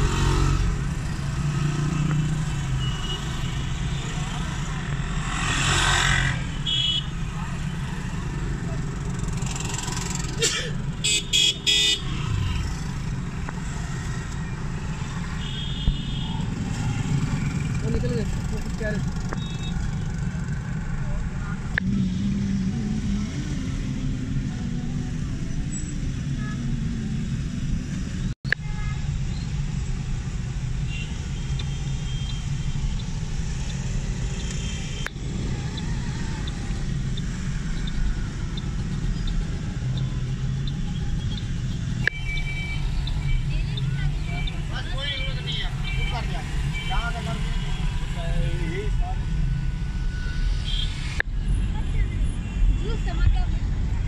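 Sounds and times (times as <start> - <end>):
traffic rumble: 0.0 - 54.0.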